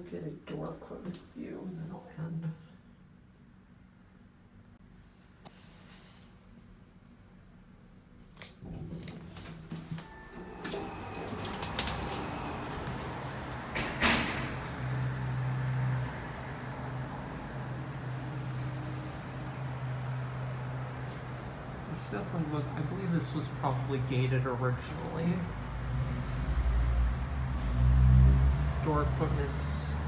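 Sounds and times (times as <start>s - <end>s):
elevator door motor humming: 8.6s - 22.7s.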